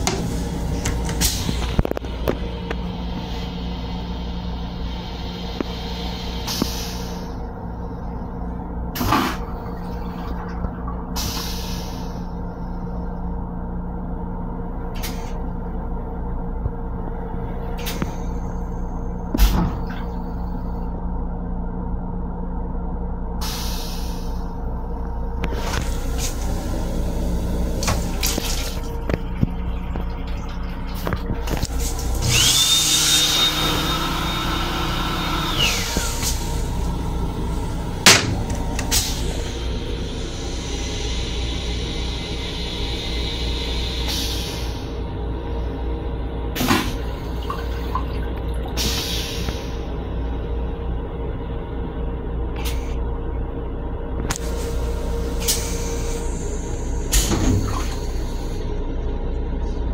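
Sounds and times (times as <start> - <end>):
toilet flushing: 0.0 - 7.6, 8.8 - 12.7, 25.4 - 45.0, 46.5 - 49.9, 54.4 - 58.7
railcar rumble and hum: 0.0 - 59.9.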